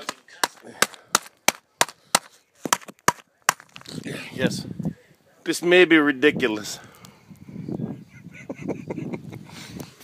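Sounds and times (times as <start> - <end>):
hammer pounding bag of beans: 0.0 - 3.8.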